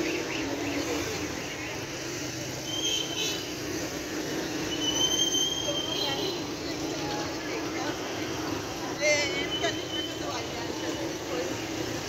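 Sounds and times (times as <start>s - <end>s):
busy street noise: 0.0s - 12.0s
high-pitched squeal: 4.6s - 6.4s.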